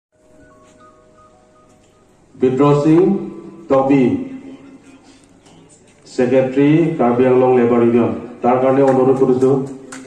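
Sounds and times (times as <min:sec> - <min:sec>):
steady hum-like tone: 0:00.2 - 0:08.6.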